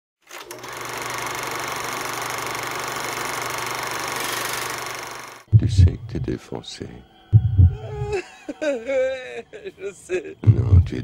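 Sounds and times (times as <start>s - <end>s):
small motor buzzing: 0.4s - 5.5s
low hum: 5.5s - 8.2s.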